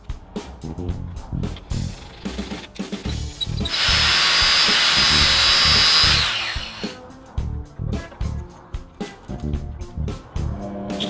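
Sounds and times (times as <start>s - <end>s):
background music with beat: 0.0s - 11.0s
angle grinder cutting metal: 3.5s - 7.0s.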